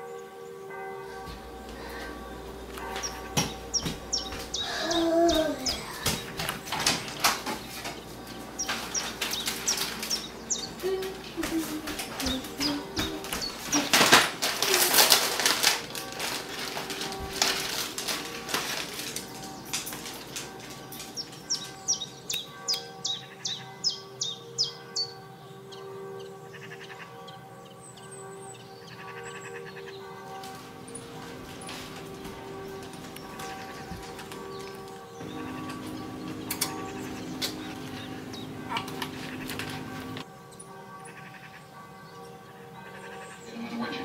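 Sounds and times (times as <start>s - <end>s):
plastic package crackling and rustling: 1.4s - 22.2s, 30.4s - 40.3s.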